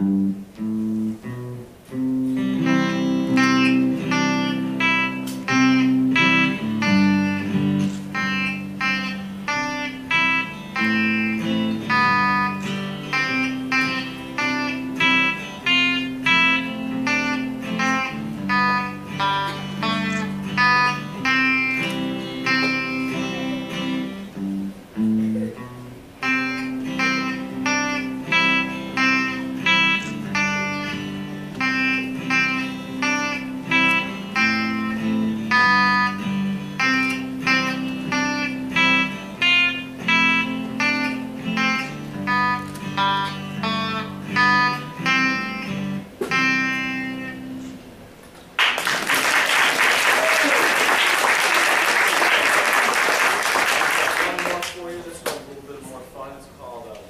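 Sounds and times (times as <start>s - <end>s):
electric guitar duet: 0.0s - 55.5s.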